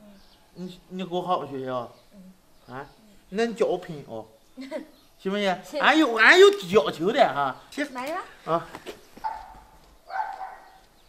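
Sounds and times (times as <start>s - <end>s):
dog barking: 9.2s - 10.8s.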